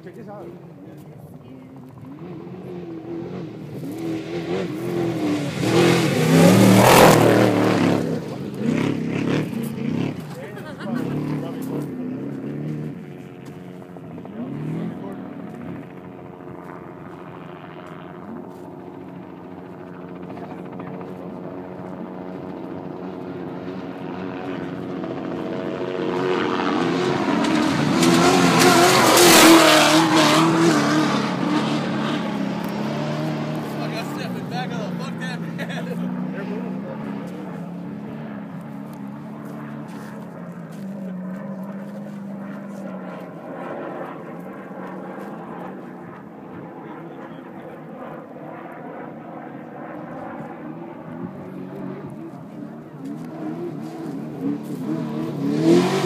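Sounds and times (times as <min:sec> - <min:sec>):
steady engine drone: 0:00.0 - 0:56.0
trucks racing past: 0:01.3 - 0:56.0.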